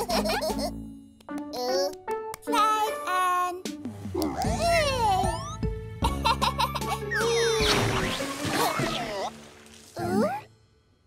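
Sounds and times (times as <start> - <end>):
background music: 0.0 - 11.0
cartoon baby squeaky voice: 7.1 - 7.8.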